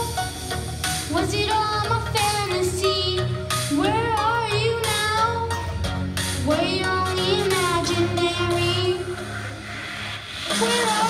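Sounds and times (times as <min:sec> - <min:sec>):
backing track with bass line: 0:00.0 - 0:11.0
boy singing through microphone: 0:01.1 - 0:05.6, 0:06.4 - 0:09.2, 0:10.5 - 0:11.0.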